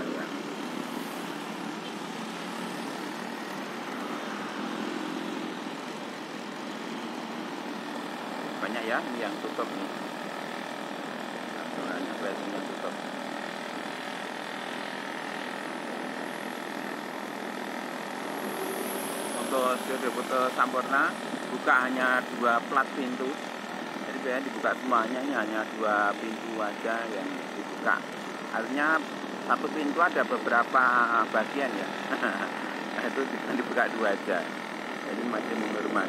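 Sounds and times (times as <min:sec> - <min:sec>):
surrounding traffic: 0:00.0 - 0:36.0
vehicle engine and road noise: 0:00.0 - 0:36.0.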